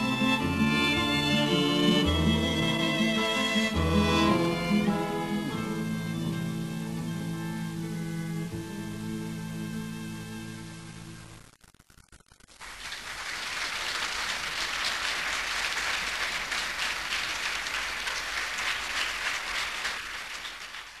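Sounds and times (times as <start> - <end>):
bowed strings chord: 0.0 - 11.3
concert audience applauding: 12.6 - 21.0.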